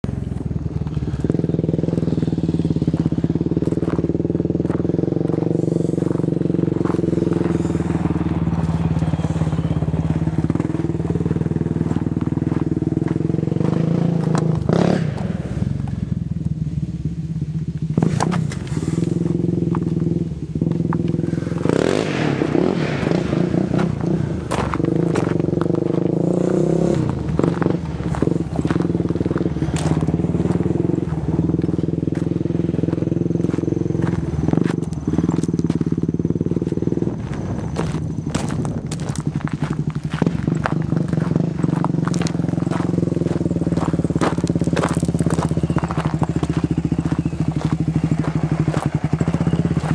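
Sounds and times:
engine idling: 0.0 - 49.9.

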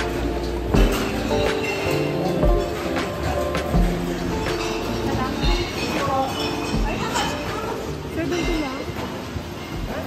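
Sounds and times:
background music: 0.0 - 10.0
glass bottles and cans clinking: 0.0 - 10.0.

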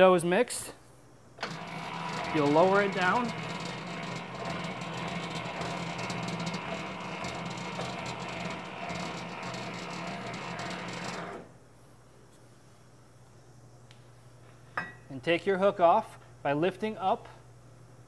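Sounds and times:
mixer gearing grinding: 1.4 - 11.6.

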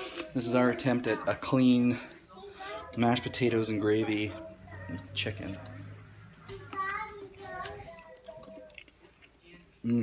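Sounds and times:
man eating soft food: 7.2 - 10.0.

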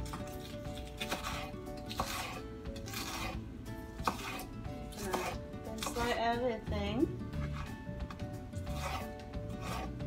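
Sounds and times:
knife slicing on wooden board: 0.0 - 3.4, 4.0 - 6.0, 7.4 - 7.8, 8.7 - 10.0
background music: 0.0 - 10.0.

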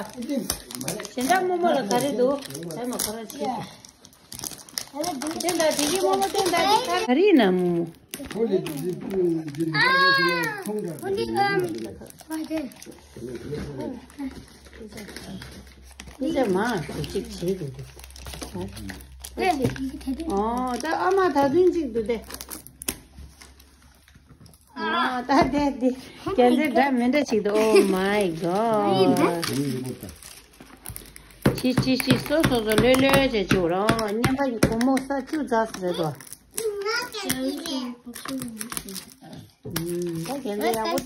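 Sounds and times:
foil packet crinkling: 0.0 - 24.8, 27.5 - 33.4, 35.5 - 41.0.

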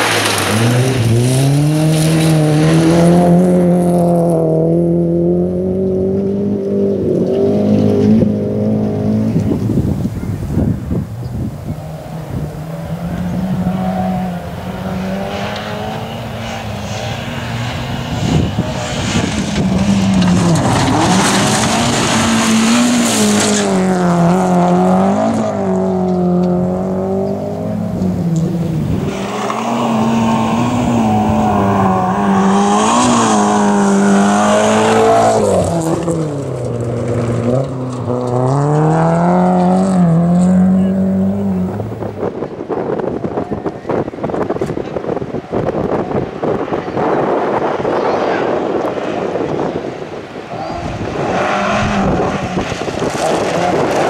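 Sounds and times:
rally car engine at hard throttle: 0.0 - 54.0.

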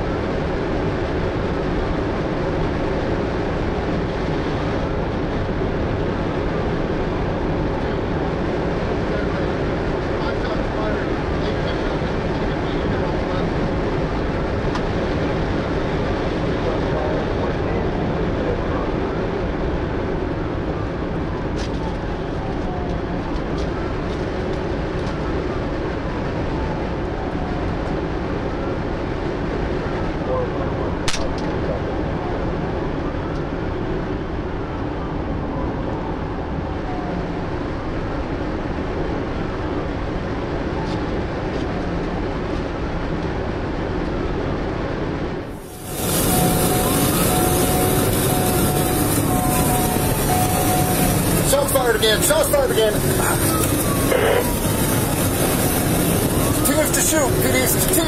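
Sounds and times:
road and wind noise in cabin: 0.0 - 58.0
sharp click: 31.1 - 31.6
siren wailing: 45.7 - 58.0.

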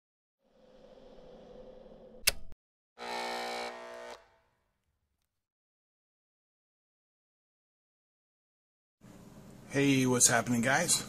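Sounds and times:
sharp click: 2.2 - 2.6
electric buzz: 3.0 - 4.7.

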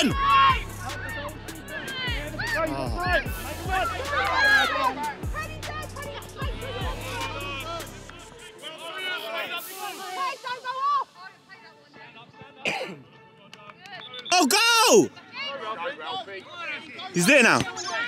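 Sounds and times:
players and spectators shouting: 0.0 - 11.4, 14.3 - 18.0.

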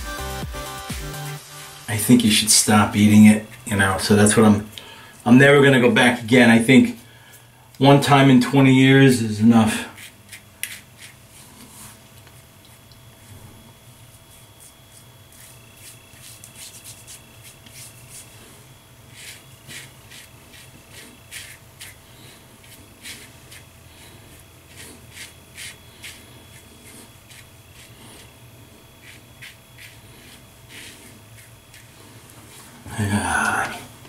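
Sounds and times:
faint low room hum: 1.9 - 34.0
razor scraping stubble: 9.5 - 33.6.

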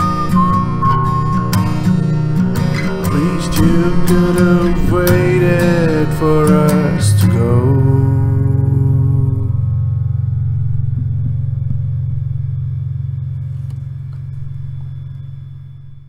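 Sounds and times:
guitar chord ringing out: 0.0 - 16.0.

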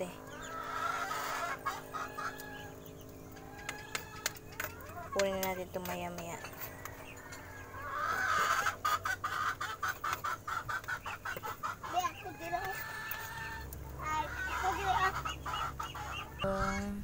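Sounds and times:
chickens clucking: 0.0 - 17.0.

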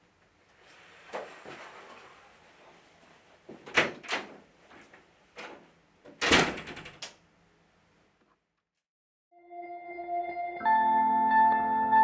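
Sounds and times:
wooden door shutting: 5.4 - 7.1.

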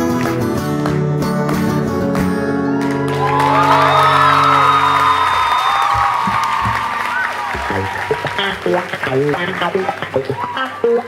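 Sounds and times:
audience applause and cheering: 2.4 - 11.0.

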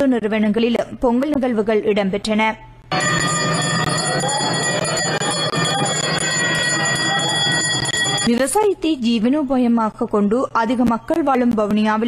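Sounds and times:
bell rung rapidly: 3.0 - 8.3.

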